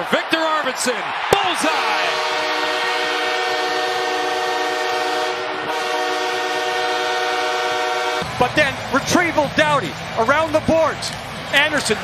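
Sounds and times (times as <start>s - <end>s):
goal horn blaring: 2.0s - 8.3s.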